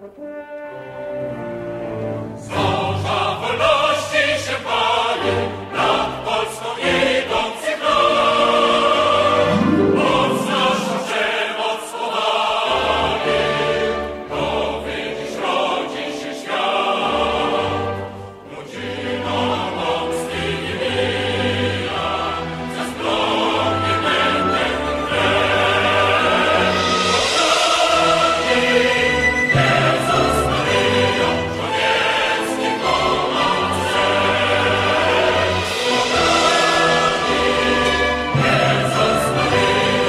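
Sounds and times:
choir singing sustained lines: 1.4 - 40.0.

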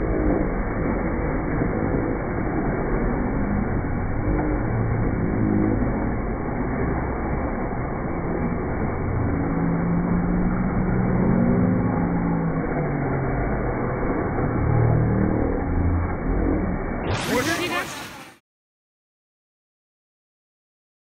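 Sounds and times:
low hum: 0.0 - 18.4
rumbling din of ice rink: 0.0 - 18.4.

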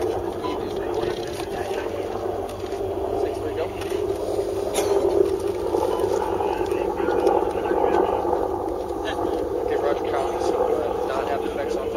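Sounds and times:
engine drone: 0.0 - 11.9
faint indistinct voices: 0.0 - 11.9.

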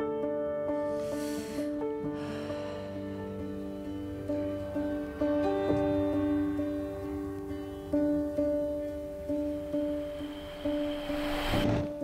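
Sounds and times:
slow instrumental music: 0.0 - 12.0
hissing swell: 9.4 - 12.0.

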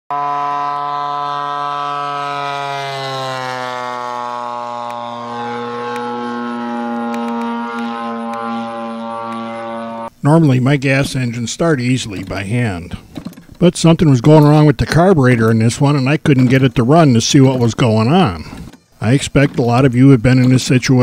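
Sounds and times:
model plane engine buzzing: 0.1 - 10.2.

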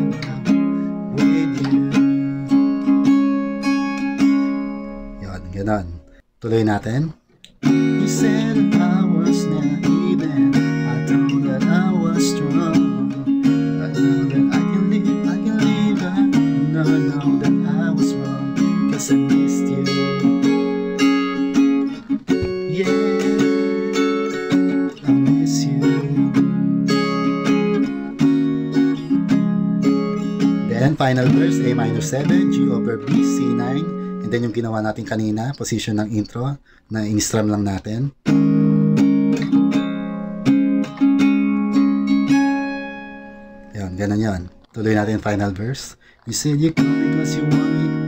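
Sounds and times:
acoustic guitar strumming: 0.0 - 6.3, 7.4 - 35.5, 38.2 - 48.0.

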